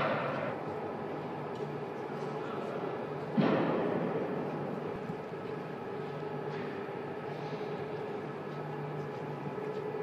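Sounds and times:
factory machinery hum: 0.0s - 10.0s.

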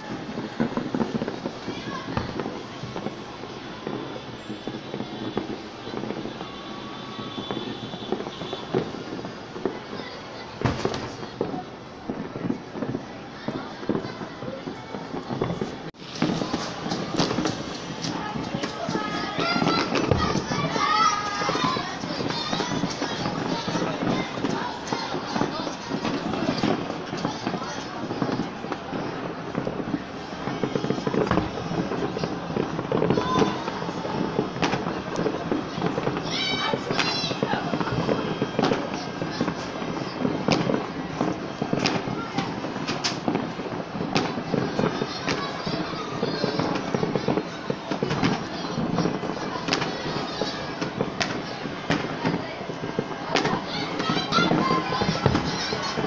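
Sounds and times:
crowd voices din: 0.0s - 56.0s
fireworks banging: 0.0s - 56.0s.

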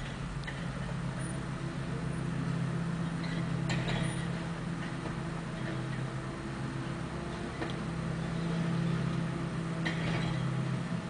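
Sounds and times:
garbage truck engine and hydraulics: 0.0s - 11.0s.

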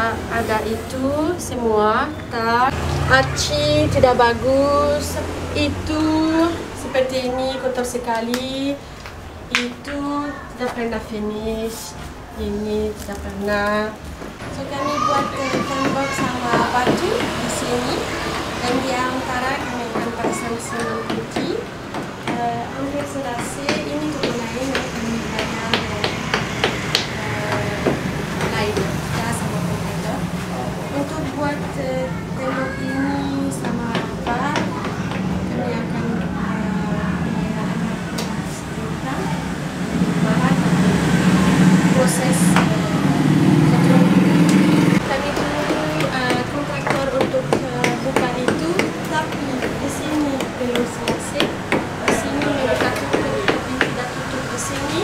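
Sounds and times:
faint voices: 0.0s - 55.0s
rapid hammering: 19.9s - 29.0s, 44.4s - 54.3s
hammer knocks: 23.0s - 28.9s
loud low hum: 35.6s - 45.2s.

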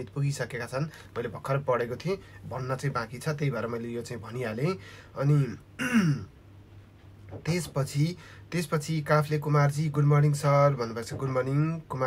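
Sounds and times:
man clearing his throat: 5.8s - 6.4s.

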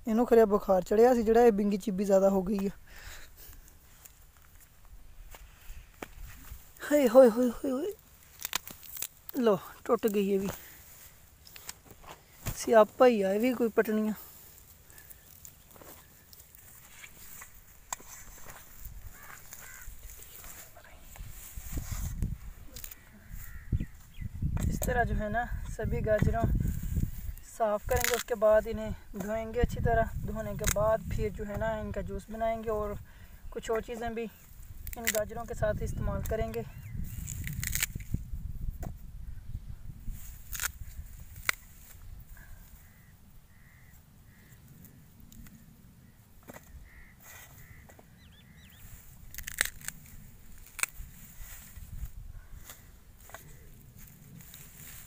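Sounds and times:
carrot tops snapping: 7.8s - 10.8s, 11.4s - 12.7s, 22.7s - 23.7s, 27.8s - 28.4s, 30.4s - 30.8s, 34.7s - 35.6s, 36.2s - 38.2s, 40.2s - 42.0s, 48.9s - 51.9s
faint animal calls: 19.0s - 20.8s, 22.7s - 24.2s, 42.3s - 45.2s, 46.0s - 48.9s
faint bird chirps: 23.0s - 24.5s, 36.7s - 37.3s, 41.6s - 45.1s, 46.0s - 49.0s.

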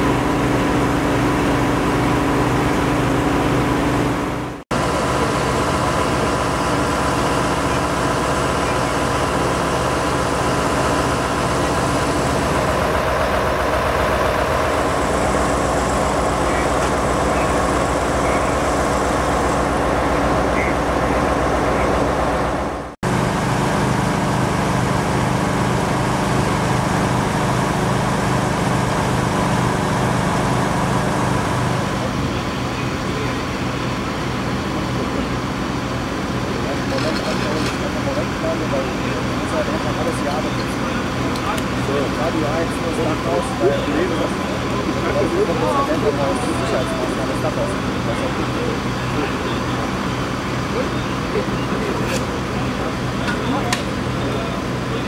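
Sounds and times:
engines idling: 0.0s - 55.0s
voices: 4.8s - 22.6s, 29.4s - 55.0s.

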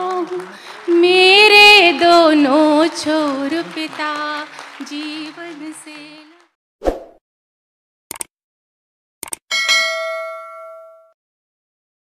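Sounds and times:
bell ding: 9.5s - 11.2s.

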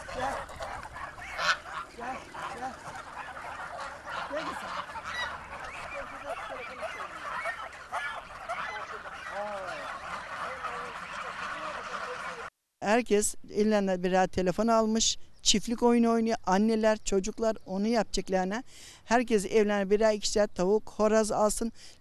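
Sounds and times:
geese honking: 0.0s - 12.5s.

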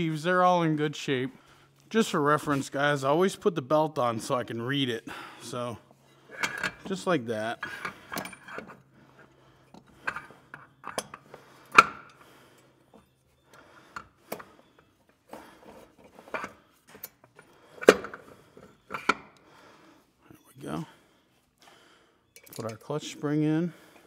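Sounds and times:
metal parts clinking and knocking: 6.3s - 8.8s, 9.7s - 12.2s, 22.3s - 22.9s.

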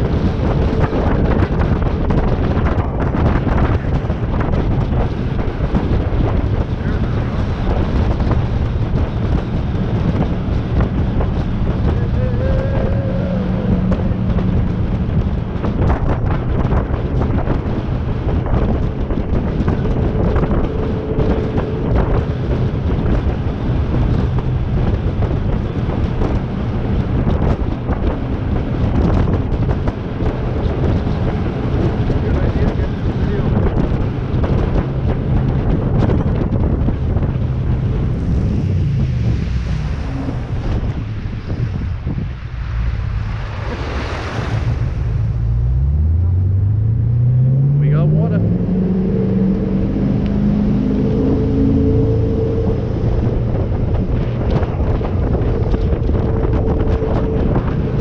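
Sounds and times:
jet boat engine: 0.0s - 58.0s
wind buffeting microphone: 0.0s - 58.0s
rushing water: 9.2s - 46.1s.

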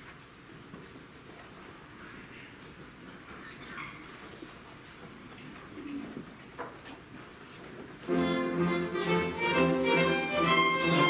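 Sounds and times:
concert audience room noise: 0.0s - 11.0s.

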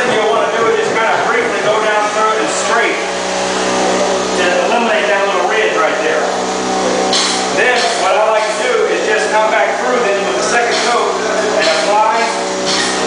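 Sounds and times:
high scraping hiss: 1.7s - 13.0s
person talking: 4.4s - 6.4s, 7.6s - 12.4s.

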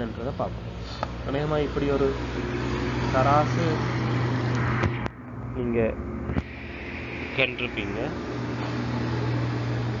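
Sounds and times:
low hum: 2.0s - 10.0s
person speaking: 7.0s - 8.2s.

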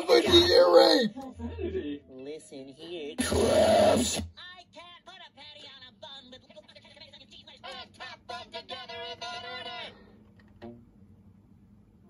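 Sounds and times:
high-pitched cartoon voice warbling: 0.0s - 1.1s, 3.2s - 4.2s.

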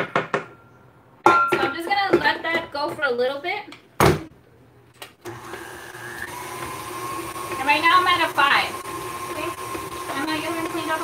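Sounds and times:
stand mixer motor running: 5.3s - 11.0s.

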